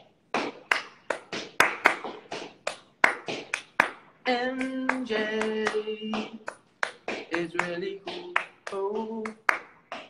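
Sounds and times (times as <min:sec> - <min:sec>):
hands clapping rhythmic beat: 0:00.0 - 0:10.0
person singing: 0:04.3 - 0:09.6.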